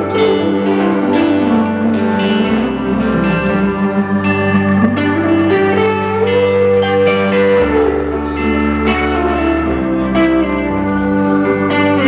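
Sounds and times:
electric guitar held notes: 0.0 - 12.0
steady bass line: 0.0 - 12.0.

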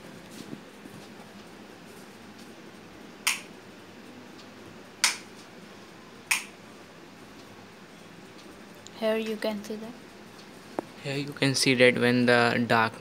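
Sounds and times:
sharp clicks: 3.2 - 3.5, 5.0 - 5.3, 6.3 - 6.6.

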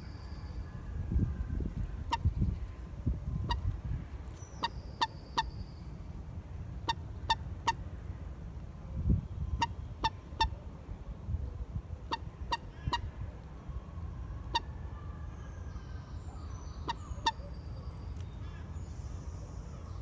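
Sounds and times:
moorhen call notes: 3.4 - 5.7, 15.8 - 18.6.

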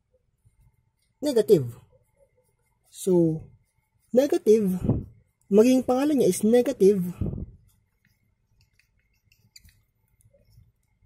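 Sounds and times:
marker writing on plastic sheet: 0.4 - 7.0, 7.6 - 11.0.

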